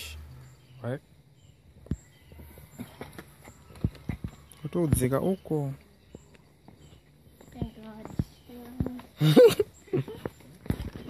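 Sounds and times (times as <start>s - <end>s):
footsteps on leafy stone steps: 1.9s - 11.0s.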